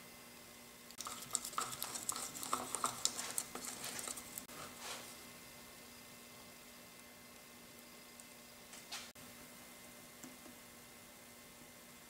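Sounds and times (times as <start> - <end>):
stick scraping plastic cup: 1.0 - 5.1.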